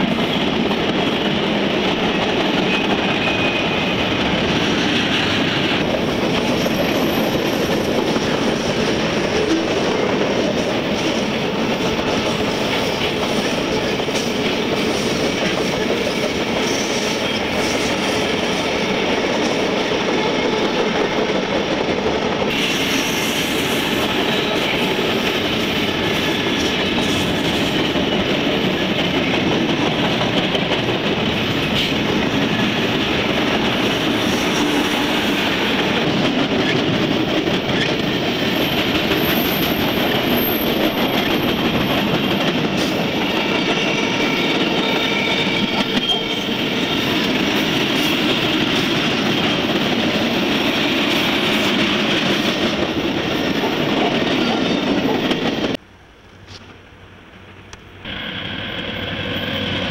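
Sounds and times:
train wheels rumbling on rails: 0.0 - 59.9
high wheel squeal: 2.6 - 4.2.

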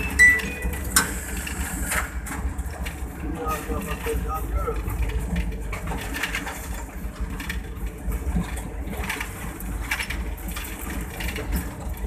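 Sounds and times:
locomotive engine rumble: 0.0 - 12.0.

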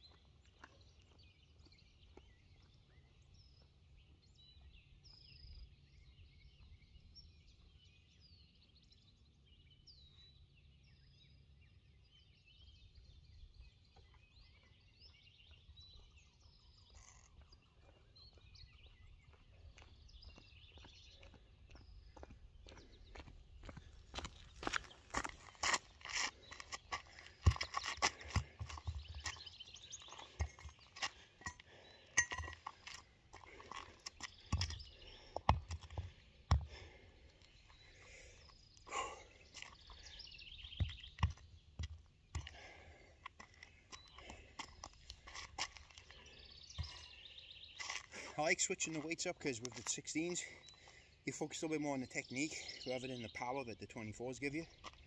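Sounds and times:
birds chirping faintly: 0.0 - 55.0
footsteps crunching on gravel: 19.2 - 37.0, 39.5 - 50.6.

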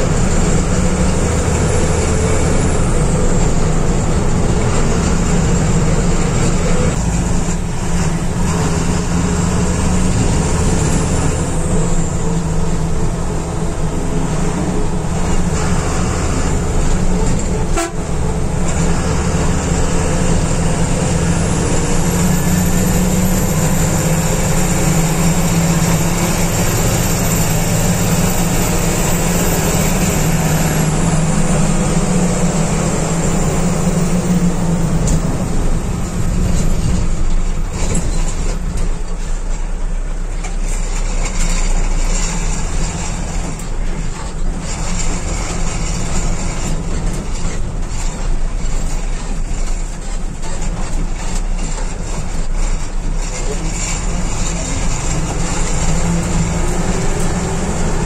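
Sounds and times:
diesel engine running: 0.0 - 58.0
road noise: 0.0 - 58.0.

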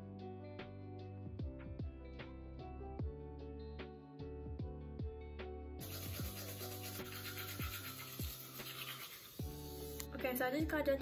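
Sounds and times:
background music with bass notes: 0.0 - 11.0
toothbrush scrubbing teeth: 5.8 - 10.1.

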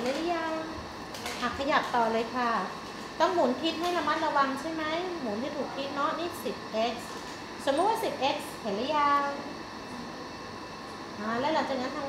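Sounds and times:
woman speaking: 0.0 - 9.5, 11.2 - 12.0
faint room hum: 0.0 - 12.0
thin constant whine: 0.0 - 12.0.

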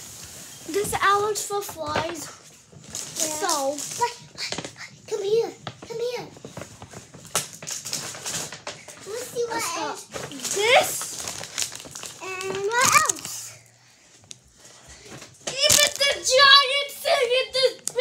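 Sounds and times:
plastic packaging crinkling: 0.0 - 14.5, 15.1 - 16.5, 17.7 - 18.0.

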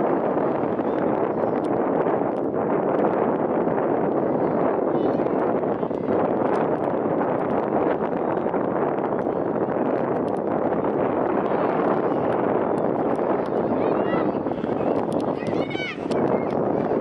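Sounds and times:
wind noise on microphone: 0.0 - 17.0.

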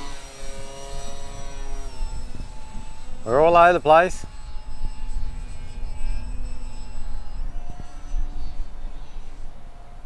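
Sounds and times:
model plane motor whining: 0.0 - 10.0
wind rumble on microphone: 0.0 - 10.0.

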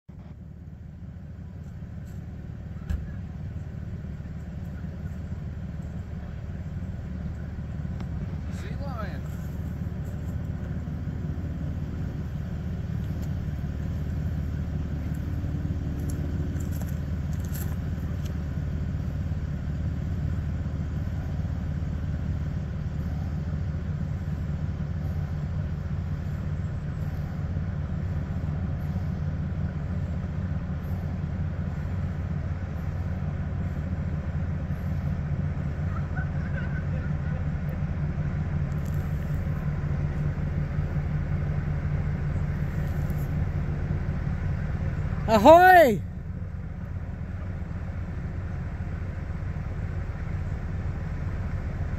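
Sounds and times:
ship engine low drone: 0.1 - 51.9.

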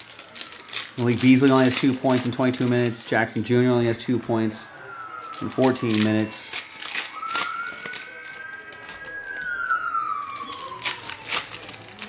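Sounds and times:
sharp crackles: 0.0 - 4.2, 5.1 - 12.0
foil wrappers crinkling: 0.0 - 4.6, 5.2 - 12.0
long siren-like tone: 1.6 - 12.0.

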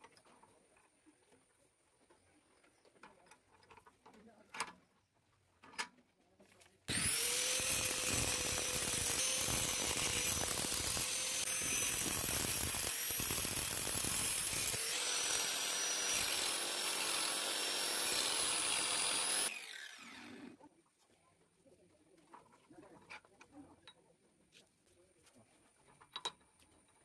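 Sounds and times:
angle grinder grinding steel: 6.9 - 20.6
grinder spinning down: 6.9 - 20.6.

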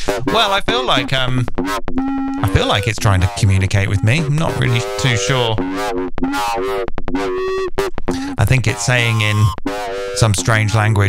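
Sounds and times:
warbling gliding distorted tones: 2.4 - 9.6.

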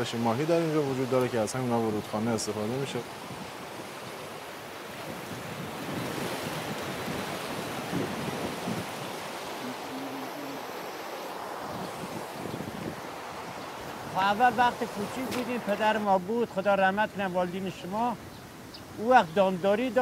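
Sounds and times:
water splashing over weirs: 0.0 - 11.6, 12.9 - 18.1.

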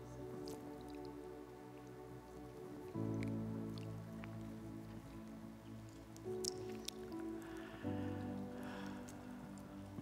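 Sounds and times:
soft keyboard chords: 0.0 - 10.0.

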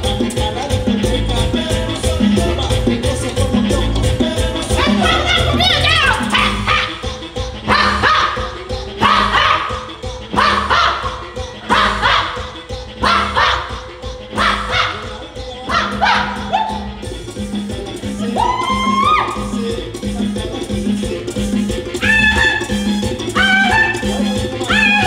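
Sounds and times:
latin dance music: 0.0 - 25.0.

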